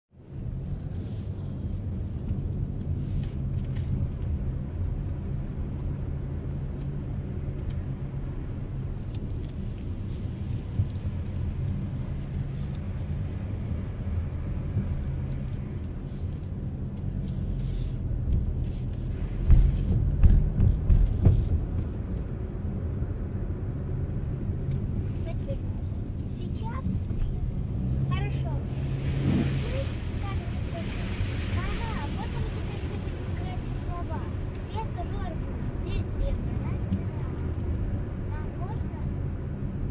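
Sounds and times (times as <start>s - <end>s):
engine and tyre rumble: 0.1s - 39.9s.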